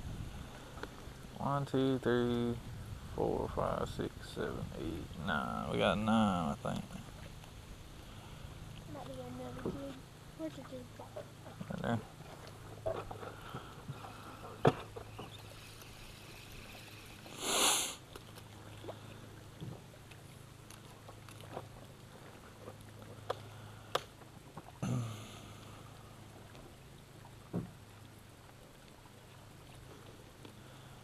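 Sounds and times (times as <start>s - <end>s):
steady low hum: 0.0s - 31.0s
person sniffing: 17.3s - 18.0s.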